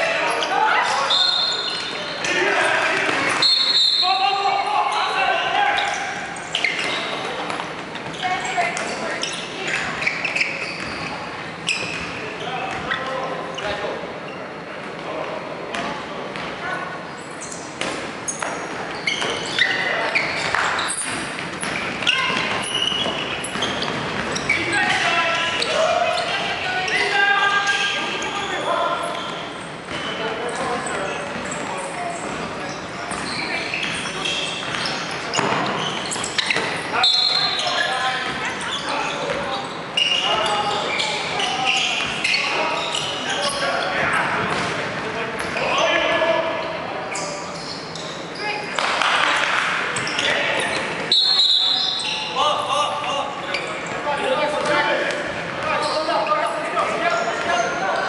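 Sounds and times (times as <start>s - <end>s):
players shouting: 0.0s - 6.3s.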